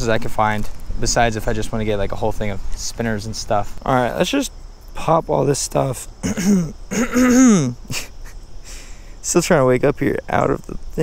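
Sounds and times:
man clearing his throat: 6.2 - 8.3.

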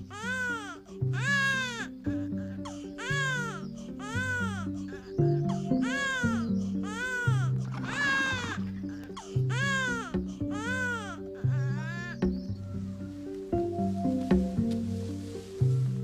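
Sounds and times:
newborn baby crying: 0.0 - 12.2
film score of sustained low notes: 0.0 - 16.0.

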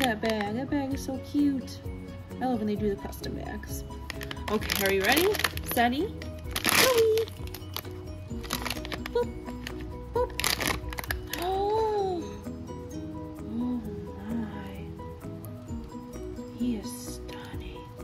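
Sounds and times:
foil bag crinkling: 0.0 - 0.5, 4.0 - 11.8
light background music: 0.0 - 18.0.

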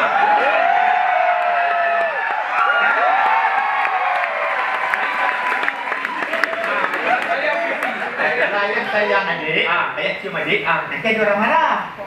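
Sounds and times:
audience cheering: 0.0 - 8.6
applause: 1.2 - 8.3.

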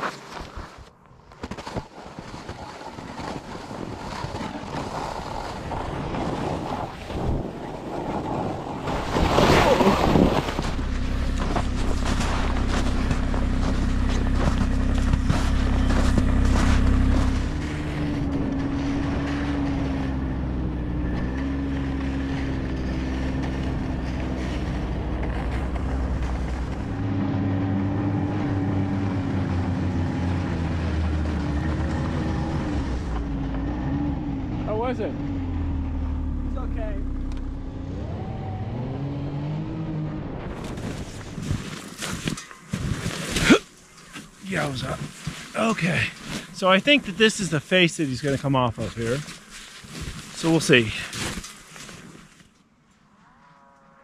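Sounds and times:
snowmobile engine running: 2.5 - 43.6, 50.0 - 51.1.

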